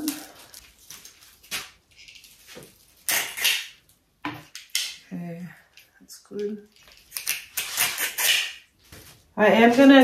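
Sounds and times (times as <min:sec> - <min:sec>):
stripping tool scraping stems: 0:03.0 - 0:03.8.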